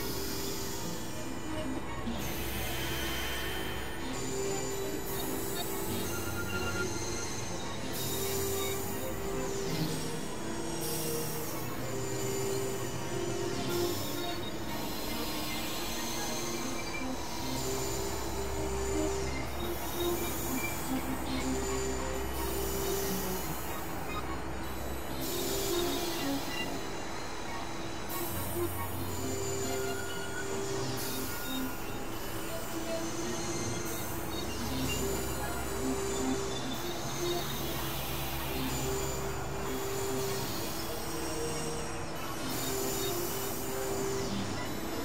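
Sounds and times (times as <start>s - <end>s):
layered synthesizer tones: 0.0s - 45.0s.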